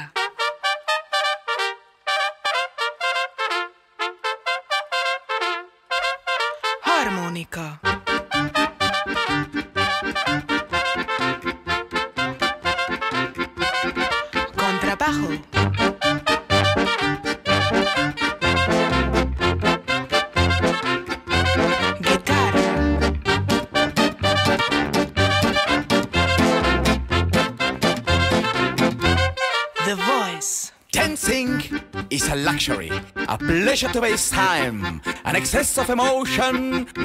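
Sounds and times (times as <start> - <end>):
trumpet playing short notes: 0.0 - 7.1, 7.9 - 11.5, 12.2 - 30.8
swing music with brass: 0.0 - 7.2, 7.8 - 37.0.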